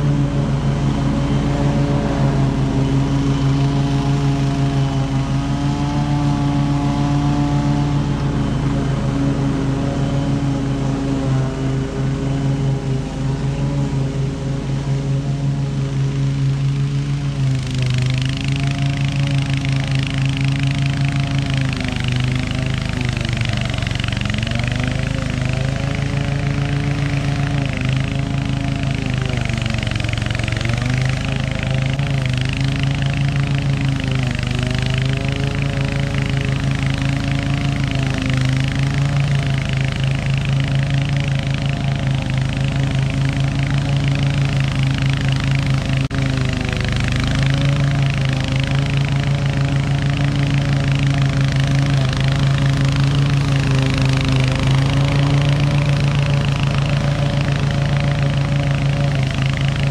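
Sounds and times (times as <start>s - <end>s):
lawn mower engine under load: 0.0s - 59.9s.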